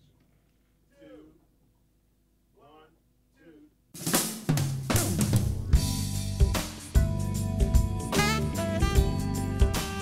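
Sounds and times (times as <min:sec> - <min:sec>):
drum kit snare and bass drum: 0:04.0 - 0:10.0
live band playing: 0:05.0 - 0:10.0.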